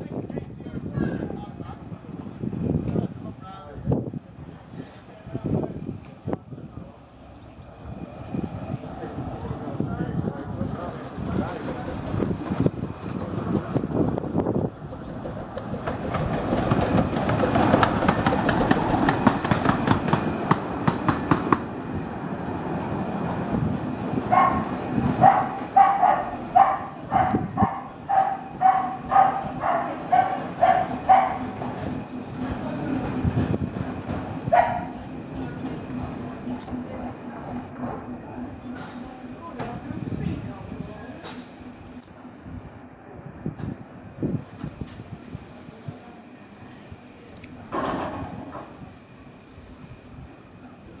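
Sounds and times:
steam locomotive moving slowly: 0.0s - 51.0s
wheels clattering over points: 11.0s - 20.3s
dog barking: 24.3s - 31.5s, 34.5s - 35.0s.

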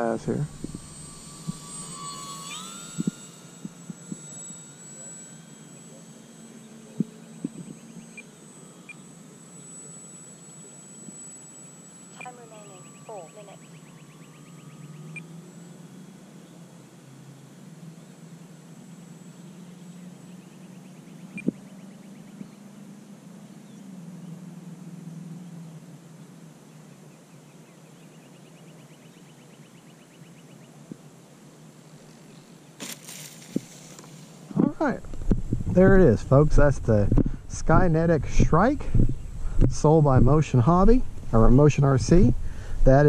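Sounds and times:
outdoor background noise: 0.0s - 43.0s
brief rustle: 32.8s - 34.4s.

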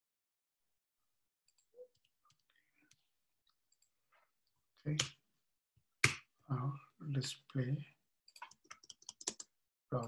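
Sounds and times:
typing on computer keyboard: 8.4s - 9.5s.

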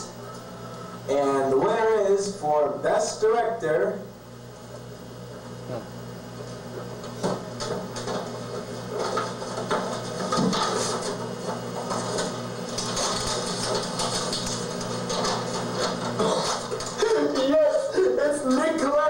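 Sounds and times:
paper rustling: 8.9s - 17.5s.

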